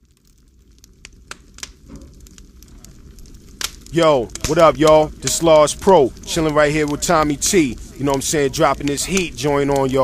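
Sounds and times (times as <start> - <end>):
faint crackling: 0.0 - 10.0.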